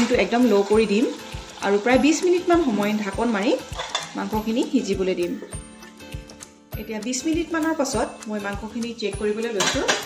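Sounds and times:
meat sizzling: 0.0 - 6.4
melodic background tune: 0.0 - 10.0
spatula scraping pan: 3.6 - 4.8
knocks against pan: 9.6 - 10.0.

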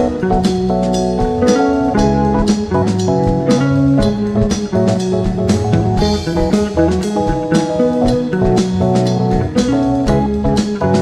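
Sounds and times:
drum kit with cymbals: 0.0 - 11.0
electric bass: 0.0 - 11.0
keyboards: 0.0 - 11.0.

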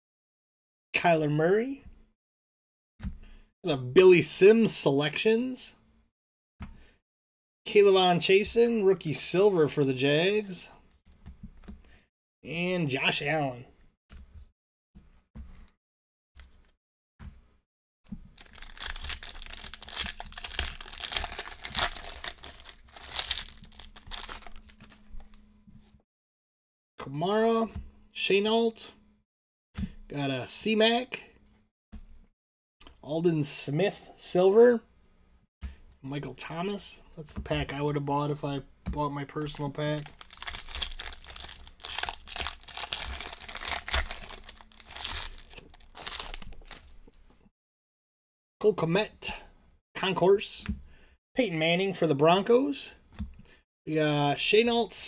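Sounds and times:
foil pack tearing and crinkling: 18.4 - 25.3, 39.9 - 46.9.

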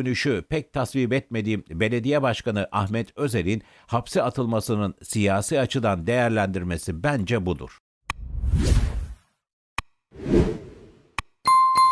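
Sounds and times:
whoosh: 8.2 - 9.2, 10.2 - 11.0.

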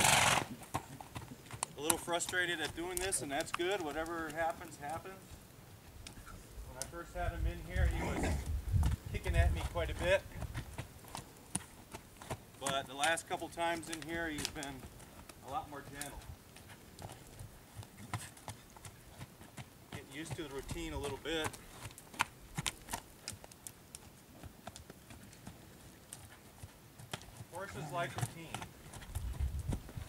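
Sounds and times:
horse hooves trotting on dirt: 0.0 - 30.0.

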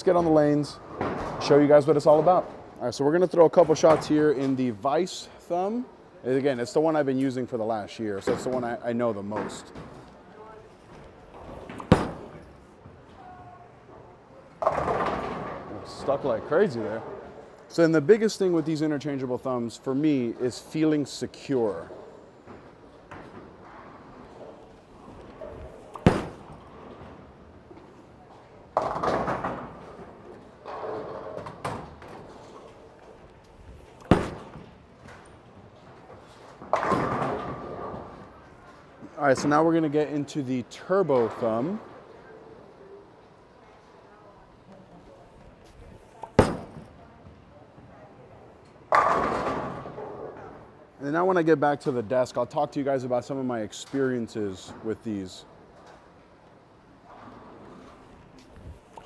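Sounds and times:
bowling alley background noise: 0.0 - 59.0
bowling balls hitting lanes: 11.3 - 12.6, 14.6 - 16.4, 24.3 - 28.0, 28.7 - 33.2, 33.8 - 38.4, 46.2 - 47.0, 48.9 - 50.6
bowling ball thudding on lane: 11.7 - 12.4, 25.9 - 26.6, 34.0 - 34.7.

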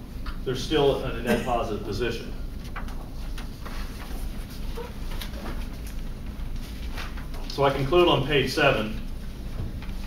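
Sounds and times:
steady low hum: 0.0 - 10.0
paper rustling: 2.6 - 10.0.

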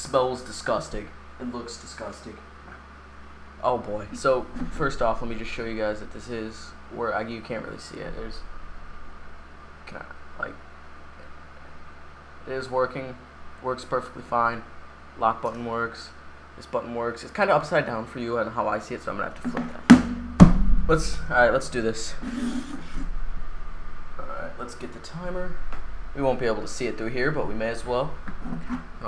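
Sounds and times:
room noise: 0.0 - 29.0
steady low hum: 0.0 - 29.0.

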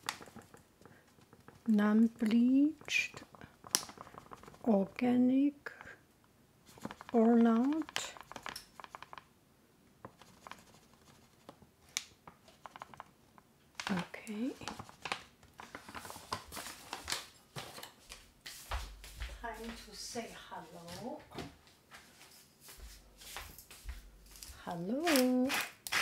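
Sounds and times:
crinkling packaging: 0.0 - 4.7, 6.7 - 9.3, 13.8 - 17.8.

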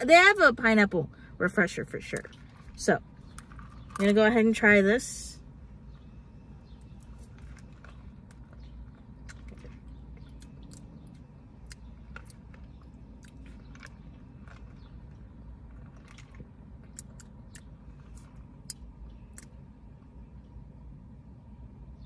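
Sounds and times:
low steady hum: 0.0 - 22.0
mouth chewing clicks and smacks: 6.6 - 20.5
person sipping a drink: 6.9 - 10.8.

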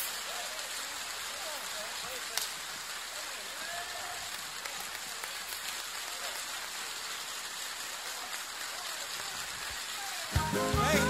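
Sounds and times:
audience applauding: 7.8 - 11.0.

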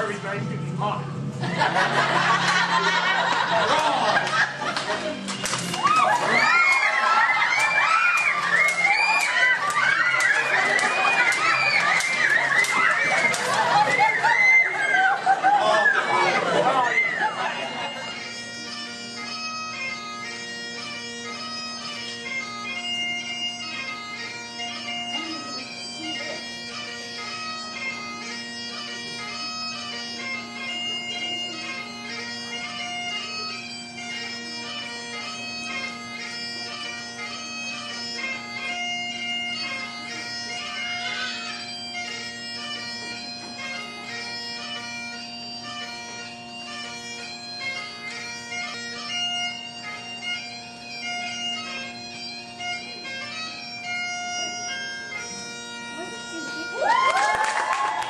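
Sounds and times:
bagpipe music: 0.0 - 58.0.

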